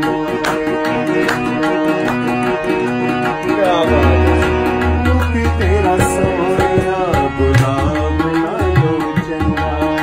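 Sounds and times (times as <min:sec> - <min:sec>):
harmonium sustained chords: 0:00.0 - 0:10.0
tabla: 0:00.0 - 0:10.0.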